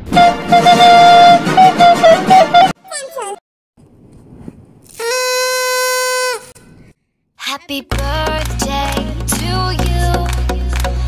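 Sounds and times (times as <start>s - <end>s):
party horn note: 0.0s - 2.8s, 5.0s - 6.5s.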